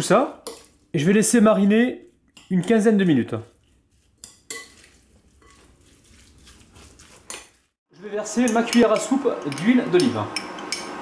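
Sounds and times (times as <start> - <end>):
spoon stirring marinade: 0.0 - 10.9
spoon clinking against glass: 4.2 - 4.9.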